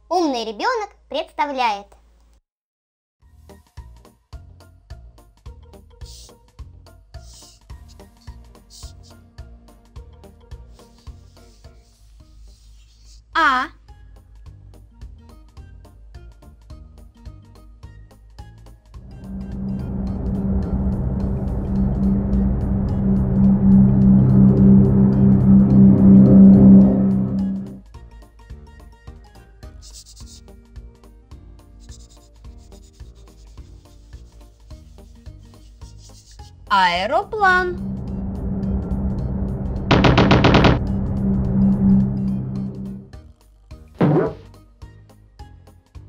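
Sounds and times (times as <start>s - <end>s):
light music with ticking beat: 3.4s - 12.0s, 28.0s - 36.6s
cartoon propeller plane drone: 19.1s - 27.8s, 37.0s - 43.1s.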